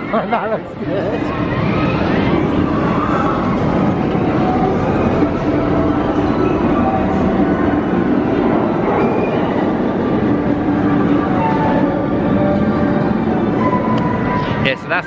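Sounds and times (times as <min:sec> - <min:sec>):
roller coaster wheels rumbling on rail: 0:00.0 - 0:14.7.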